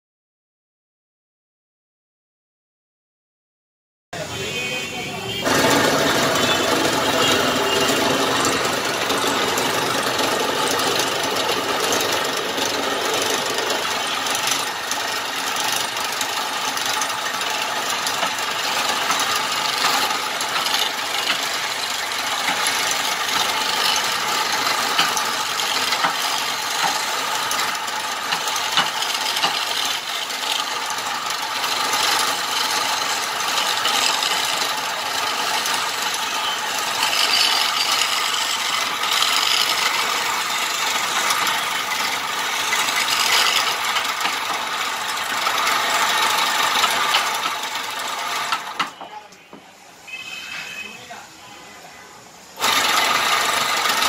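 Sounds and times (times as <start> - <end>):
chisel cutting wood: 5.4 - 49.0, 52.6 - 54.0
wood lathe running: 5.4 - 49.0, 52.6 - 54.0.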